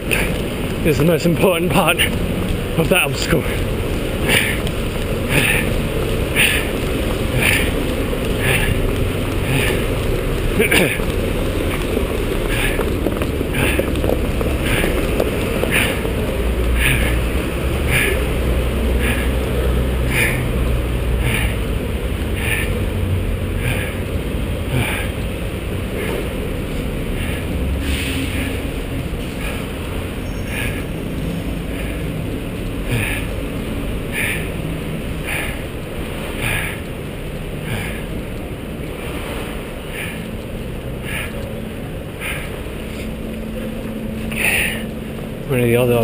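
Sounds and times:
city traffic: 0.0s - 46.0s
wind rumble: 0.0s - 46.0s.

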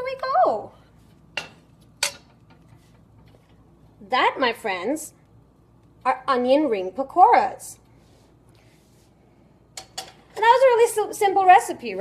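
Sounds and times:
utensil clinking on cookware: 1.4s - 2.6s.

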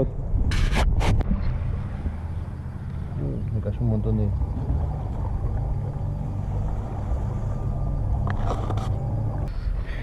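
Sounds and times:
wind rumble on microphone: 0.0s - 9.5s.

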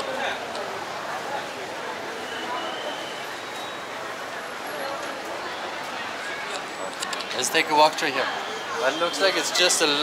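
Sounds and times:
background noise: 0.0s - 10.0s.

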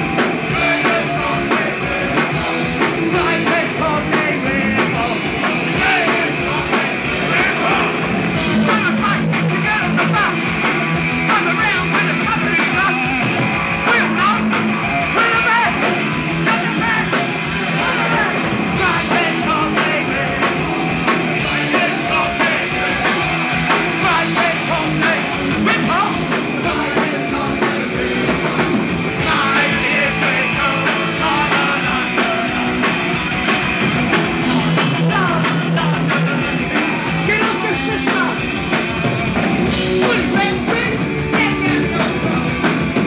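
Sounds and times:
singer shouting vocals: 0.0s - 10.5s, 11.2s - 20.6s, 21.3s - 28.2s, 29.2s - 32.8s, 34.4s - 38.5s, 39.9s - 42.4s
drums: 0.0s - 43.0s
electric guitar: 0.0s - 43.0s.

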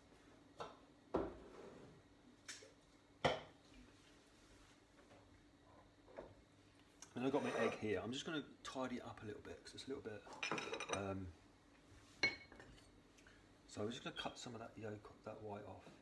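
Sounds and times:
kitchenware knocks and clinks: 10.4s - 11.1s.

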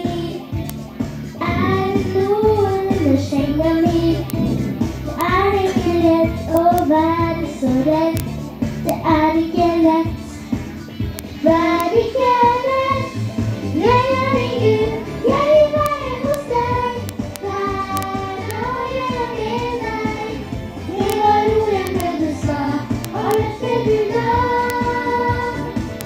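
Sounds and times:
girl singing into microphone: 0.0s - 0.5s, 1.4s - 10.2s, 11.4s - 25.8s
woman singing along: 1.4s - 8.2s, 20.9s - 25.9s.

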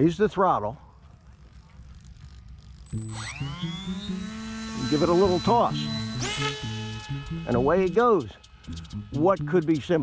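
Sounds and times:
electric motor and propeller whine: 1.8s - 10.0s.

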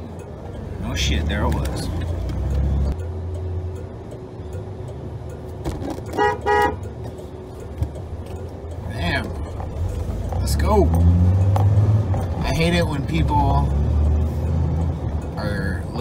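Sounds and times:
pickup engine rumble: 0.0s - 16.0s
car horn toots: 6.1s - 6.9s.

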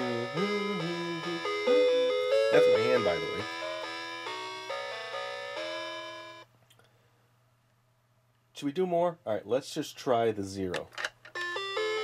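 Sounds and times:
electronic toy melody: 0.0s - 6.5s, 11.3s - 12.0s.

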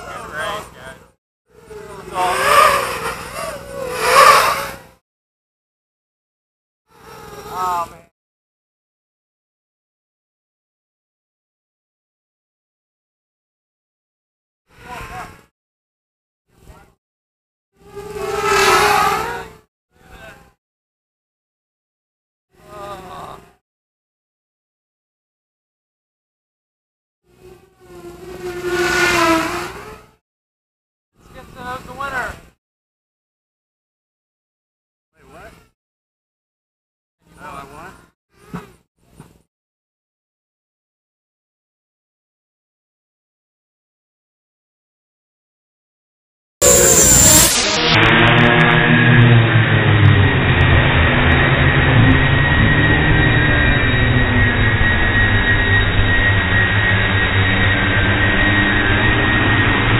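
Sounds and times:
quadcopter motors whining: 0.0s - 5.0s, 6.9s - 8.1s, 17.8s - 19.6s, 27.3s - 30.2s, 46.6s - 59.9s.

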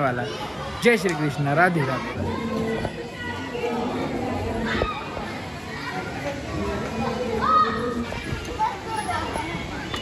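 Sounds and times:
chatter of people and children: 0.0s - 10.0s.

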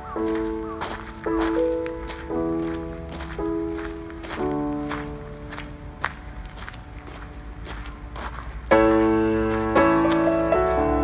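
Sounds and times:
crunching footsteps: 0.0s - 11.0s.

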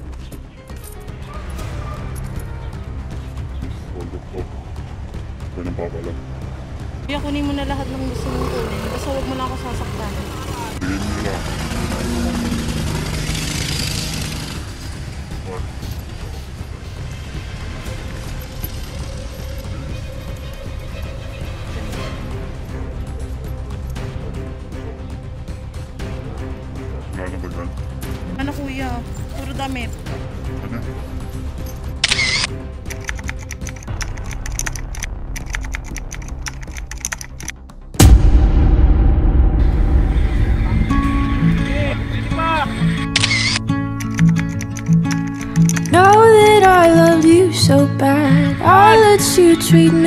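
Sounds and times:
background music: 0.0s - 50.0s
indistinct low voices: 7.1s - 13.1s
camera shutter burst: 32.0s - 32.5s, 43.1s - 45.9s
quick typing clicks: 32.9s - 37.5s, 44.0s - 46.0s
low outdoor rumble: 38.0s - 43.3s.

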